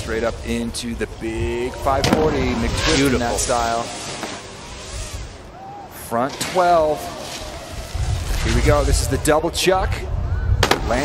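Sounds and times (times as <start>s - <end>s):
snowboard scraping on snow: 0.0s - 5.5s, 6.3s - 9.3s.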